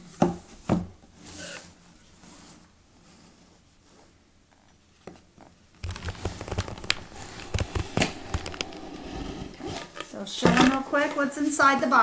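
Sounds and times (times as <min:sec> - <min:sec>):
cardboard box being handled: 0:05.8 - 0:10.1.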